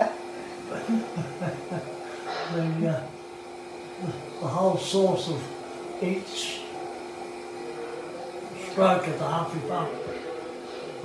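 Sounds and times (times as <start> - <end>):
steady hum: 0.0 - 11.0
quiet talking: 3.9 - 11.0.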